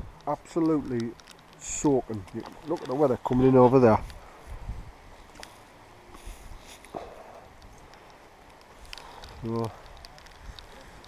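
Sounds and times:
light ticks: 0:00.0 - 0:04.3, 0:05.2 - 0:05.7, 0:06.7 - 0:11.0
rain: 0:00.0 - 0:11.0
wind: 0:00.0 - 0:11.0.

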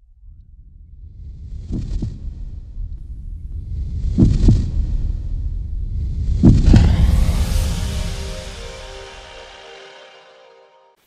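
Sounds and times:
low rumble: 0:06.4 - 0:10.5.

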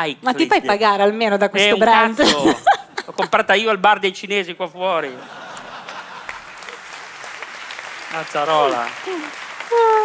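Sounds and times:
applause: 0:05.6 - 0:10.0.

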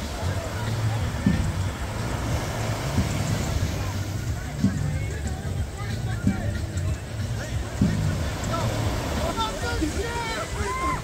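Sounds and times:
distant voices: 0:00.0 - 0:11.0
surf washing on sandy beach: 0:00.0 - 0:11.0.

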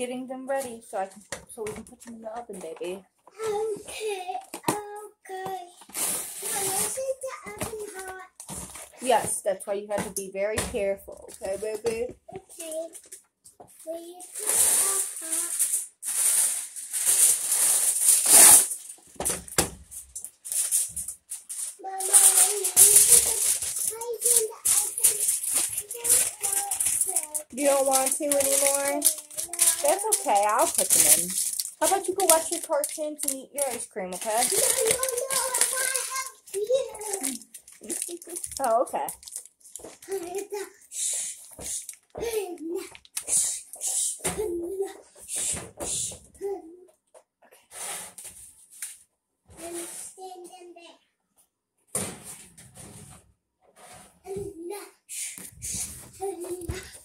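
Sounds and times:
toddler high-pitched vocal sounds: 0:03.3 - 0:05.8, 0:06.4 - 0:08.4, 0:13.8 - 0:15.6, 0:21.8 - 0:27.5, 0:28.7 - 0:30.2, 0:34.4 - 0:38.5, 0:40.0 - 0:41.2, 0:42.2 - 0:46.9, 0:49.6 - 0:51.0, 0:54.2 - 0:55.3, 0:56.2 - 0:57.0
packaging rustling: 0:05.9 - 0:09.2, 0:14.3 - 0:40.6, 0:41.4 - 0:42.2
breathy hissing noises: 0:40.8 - 0:42.0, 0:43.2 - 0:44.3, 0:45.2 - 0:46.3, 0:55.1 - 0:56.1.

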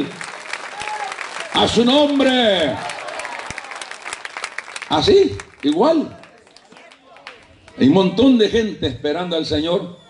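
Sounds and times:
congregation applauding: 0:00.0 - 0:08.0.

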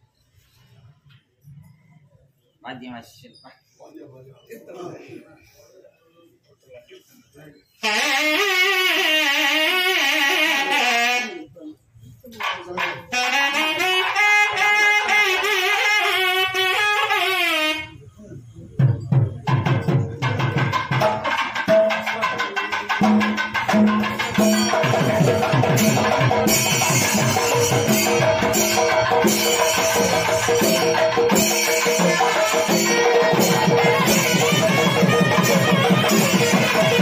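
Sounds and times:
conch shell blasts: 0:12.5 - 0:18.0, 0:24.2 - 0:37.0
fast temple percussion: 0:18.6 - 0:37.0.

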